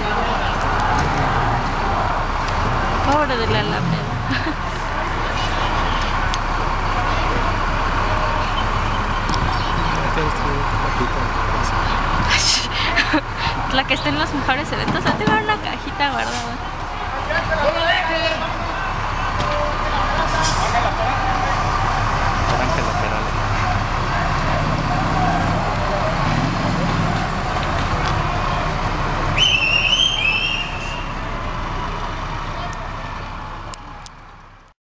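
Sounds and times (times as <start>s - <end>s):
crowd chatter: 0.0s - 34.7s
vehicle engines idling and moving: 0.0s - 34.8s
high wavering whistle-like tone: 29.4s - 31.1s.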